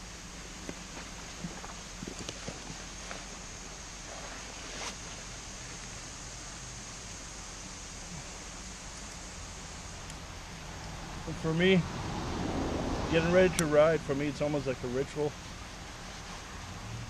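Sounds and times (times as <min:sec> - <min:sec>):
faint outdoor hiss: 0:00.0 - 0:17.0.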